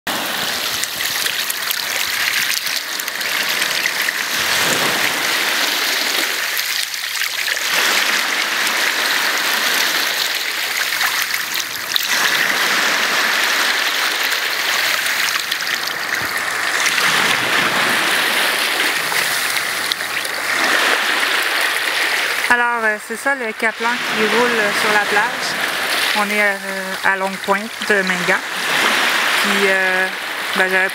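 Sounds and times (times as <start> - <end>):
small waves washing on a beach: 0.1 - 30.9.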